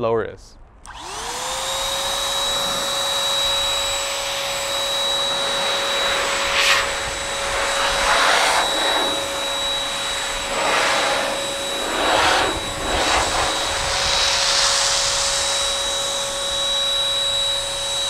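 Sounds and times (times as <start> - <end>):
car dryer motor whine: 0.8 - 18.0
rush of blowing air: 0.9 - 17.0.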